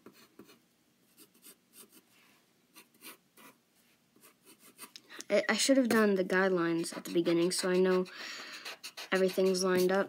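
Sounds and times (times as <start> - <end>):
pencil scratching on paper: 0.0 - 2.0, 2.8 - 3.6, 4.2 - 4.9, 6.7 - 10.0.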